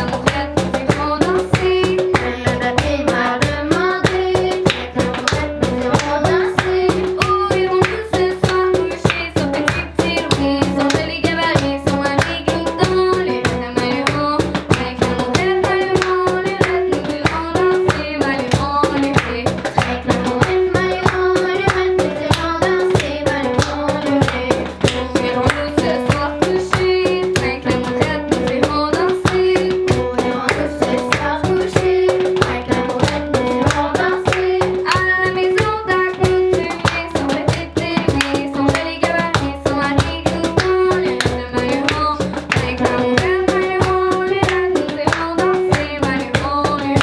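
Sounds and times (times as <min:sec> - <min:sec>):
cajon beat: 0:00.0 - 0:47.0
hand claps: 0:00.0 - 0:47.0
children singing: 0:01.0 - 0:08.7, 0:15.1 - 0:41.8.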